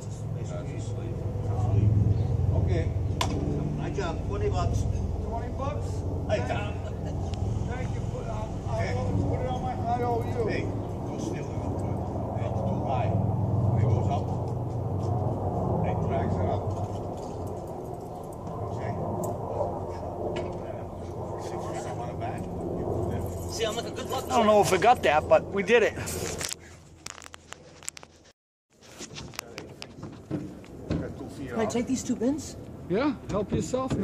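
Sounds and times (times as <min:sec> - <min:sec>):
men talking at a distance: 0:00.0 - 0:14.6, 0:15.6 - 0:26.1, 0:30.8 - 0:32.2.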